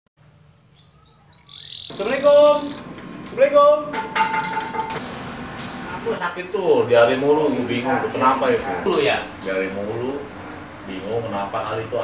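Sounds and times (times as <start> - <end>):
small bird chirping: 0.7 - 2.8.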